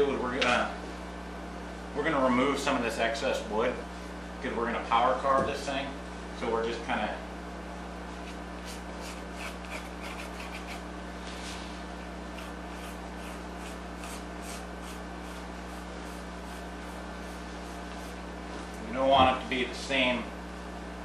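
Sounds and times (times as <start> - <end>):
steady low hum: 0.0 - 21.0
pencil scratching on wood: 8.3 - 10.8, 12.4 - 18.2.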